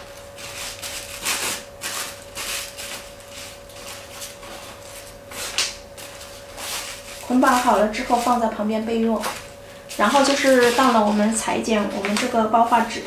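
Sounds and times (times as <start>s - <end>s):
faint steady hum: 0.0s - 13.0s
tissue paper rustling and crinkling: 0.0s - 13.0s.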